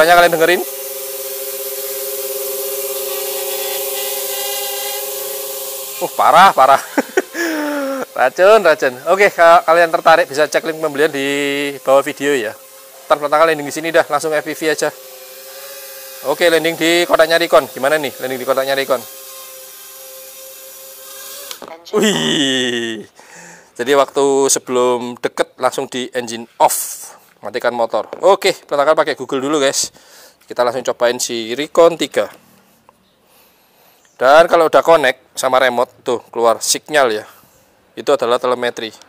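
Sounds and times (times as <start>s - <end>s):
propeller wash hiss: 0.0s - 4.3s, 5.0s - 19.2s
drone motors humming: 0.0s - 19.3s
quadcopter buzzing whine: 0.0s - 21.8s.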